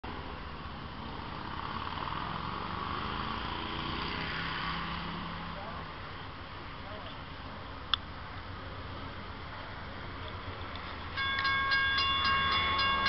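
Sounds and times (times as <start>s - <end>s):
vehicle noise: 0.0s - 13.0s.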